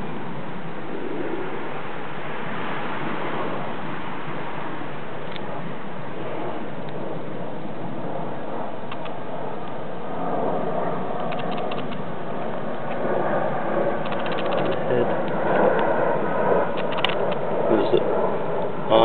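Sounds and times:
steady background noise: 0.0 - 19.0
light clicks: 8.9 - 9.8, 11.2 - 12.0, 14.0 - 15.9, 16.7 - 17.4.

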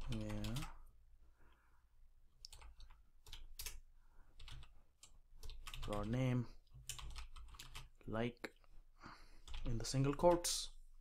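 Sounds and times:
keyboard typing: 0.0 - 0.8, 2.4 - 3.8, 4.4 - 8.0, 9.4 - 10.6.

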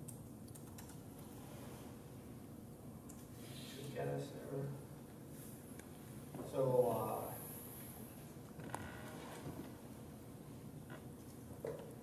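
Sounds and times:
laptop keyboard typing: 0.0 - 1.2
low room hum: 0.0 - 12.0.

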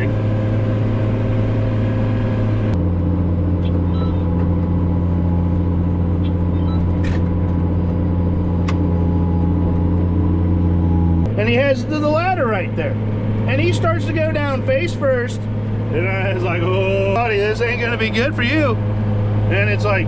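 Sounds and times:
tractor diesel engine drone: 0.0 - 20.0.

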